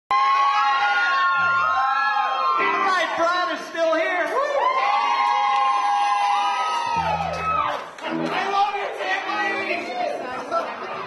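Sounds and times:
audience cheering and whooping: 0.1s - 3.4s, 4.2s - 8.4s.

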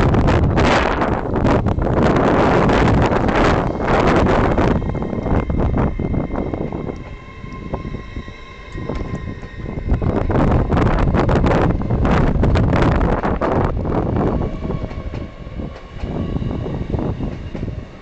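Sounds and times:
steady train whine: 0.0s - 18.0s
train coaches rumbling on rails: 0.0s - 18.0s
wind gusts on microphone: 0.0s - 18.0s.

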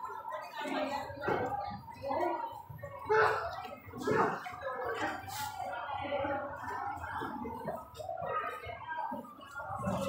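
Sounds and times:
indistinct talking: 0.0s - 10.0s.

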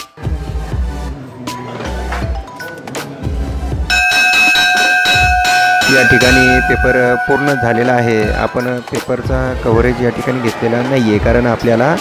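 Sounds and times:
brass hand bell ringing: 3.9s - 8.9s.

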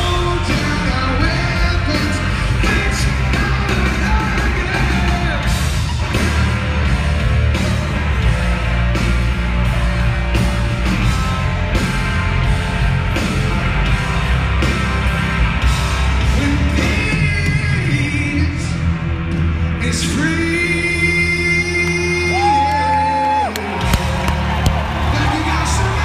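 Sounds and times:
crowd yelling: 0.0s - 12.6s, 21.5s - 26.0s
live hard rock band: 0.0s - 26.0s
person singing: 16.4s - 18.8s.

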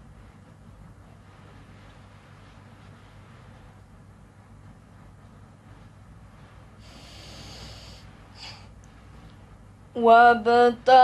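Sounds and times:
girl drawing hissing breath: 6.8s - 8.7s.

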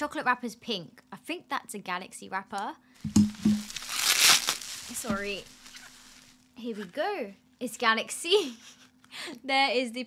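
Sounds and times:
dull thumps: 3.0s - 3.8s
bubble wrap crinkling: 3.0s - 6.6s.

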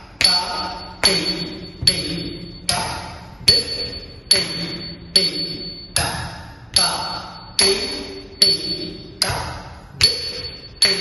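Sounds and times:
hand cymbals ringing: 0.0s - 11.0s.

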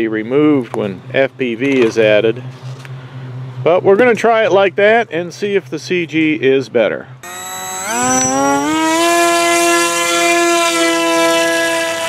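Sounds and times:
electric propeller motor whine: 7.2s - 12.0s.

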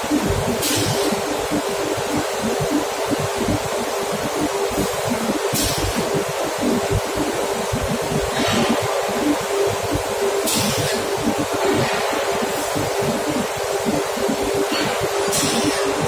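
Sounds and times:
loud machinery rush and hum: 0.0s - 16.0s.

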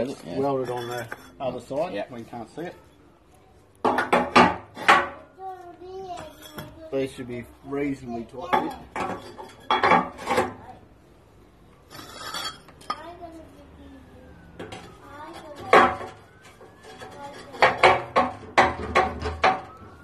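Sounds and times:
brick scraping: 11.9s - 12.7s
bricks clanking against steel: 16.8s - 19.7s.

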